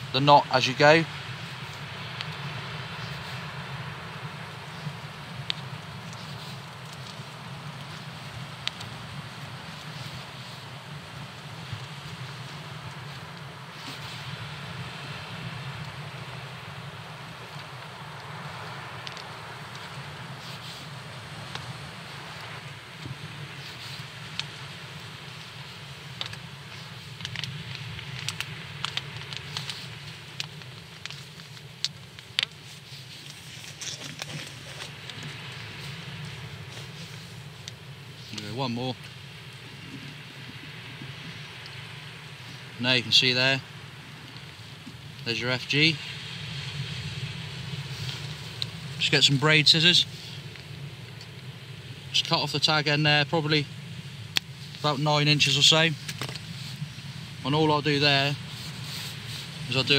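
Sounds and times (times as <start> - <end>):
outdoor background noise: 0.0 - 59.9
fishing line clicks and rustles: 4.6 - 51.5, 54.2 - 59.9.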